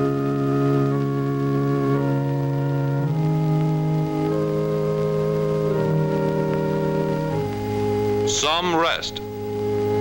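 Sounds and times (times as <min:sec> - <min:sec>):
organ playing slow chords: 0:00.0 - 0:10.0.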